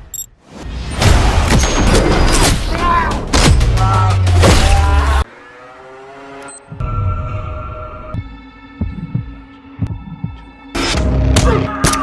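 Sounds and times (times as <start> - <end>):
heartbeat-like thumps: 8.2 - 10.6.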